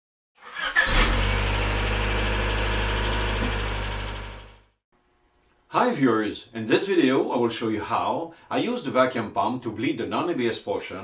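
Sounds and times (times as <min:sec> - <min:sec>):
car engine starting and idling: 0:00.4 - 0:04.7.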